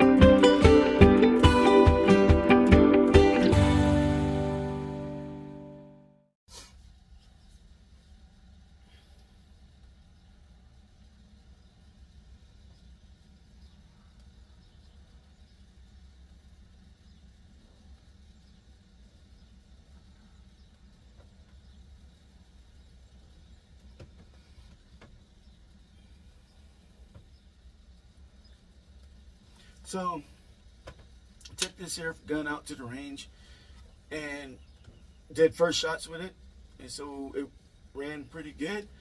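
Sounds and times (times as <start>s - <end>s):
steady low hum: 6.5s - 39.0s
faint clicks: 12.7s - 15.7s.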